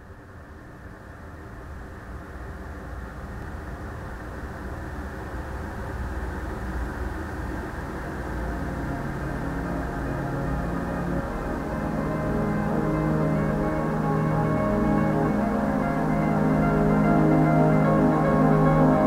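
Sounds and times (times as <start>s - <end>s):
low sustained tones: 4.6s - 19.0s.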